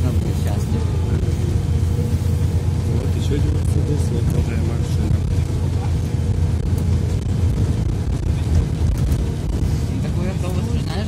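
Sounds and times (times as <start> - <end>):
bus interior drone: 0.0 - 11.0.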